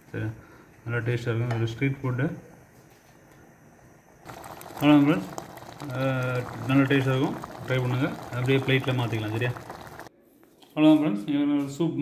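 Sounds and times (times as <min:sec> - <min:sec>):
soup bubbling in a pot: 0:04.2 - 0:10.1.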